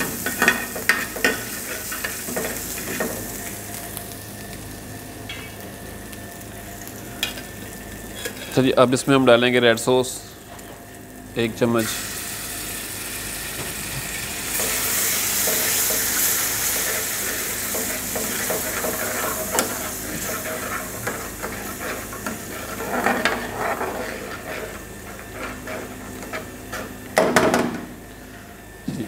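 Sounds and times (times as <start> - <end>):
sauce sizzling in frying pan: 0.0 - 8.8, 10.5 - 27.4
metal spoon scraping pan: 16.7 - 27.0.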